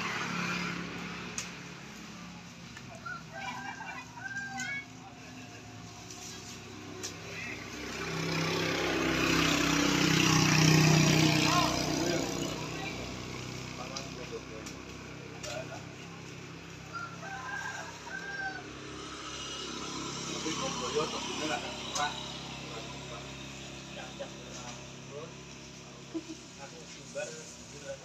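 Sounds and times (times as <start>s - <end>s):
motor vehicle passing: 0.0s - 28.0s.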